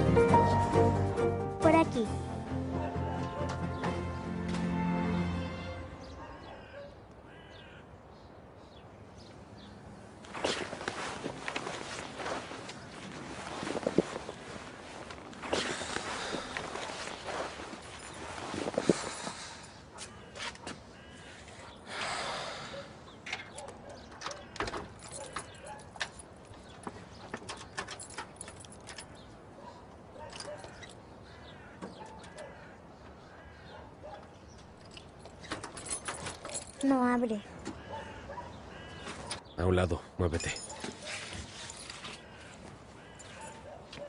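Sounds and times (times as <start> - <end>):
footsteps: 10.2 - 19.1
rustling: 10.2 - 19.4.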